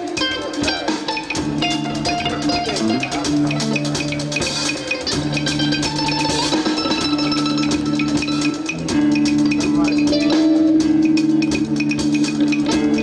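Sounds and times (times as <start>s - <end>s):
live band playing: 0.0s - 13.0s.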